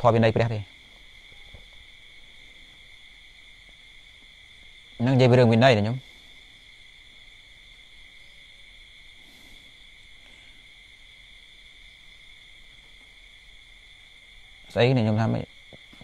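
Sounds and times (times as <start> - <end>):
faint high-pitched two-tone drone: 0.0 - 16.0.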